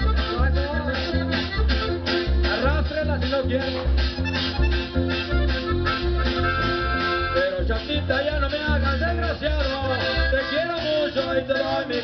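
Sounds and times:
live band dance music: 0.0 - 12.0.

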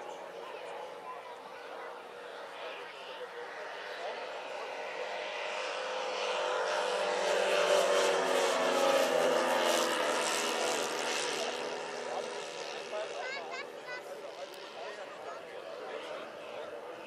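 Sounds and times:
model airplane propellers droning: 0.0 - 17.0.

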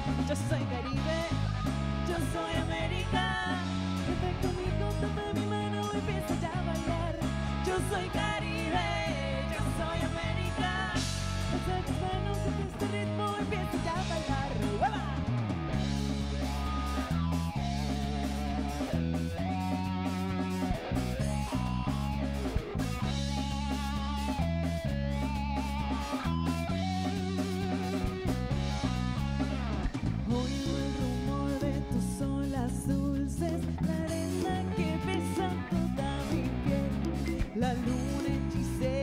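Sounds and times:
electric guitar: 0.0 - 39.0
live band playing: 0.0 - 39.0.

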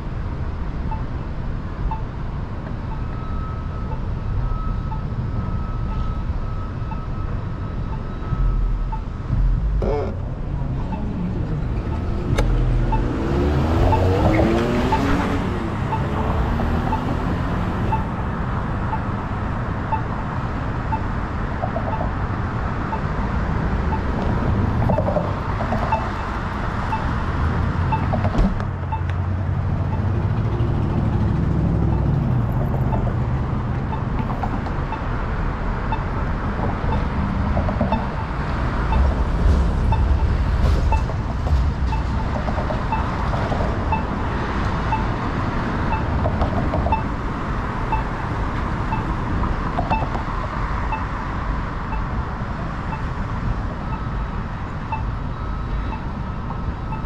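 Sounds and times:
traffic rumble: 0.0 - 57.0
vehicle passing: 8.3 - 18.9, 23.3 - 51.9.

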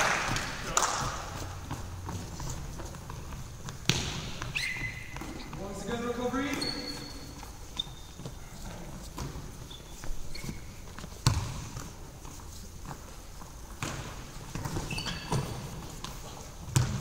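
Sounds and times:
shoes squeaking on wooden floor: 0.0 - 17.0
ball thudding: 3.7 - 4.4.

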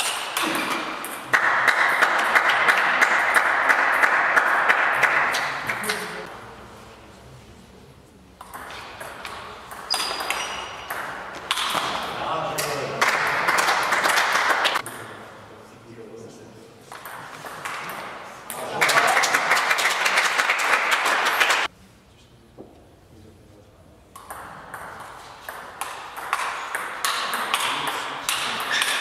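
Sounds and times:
table tennis ball pinging: 8.4 - 12.7, 24.2 - 29.0
spectators shouting and clapping: 18.6 - 21.7.

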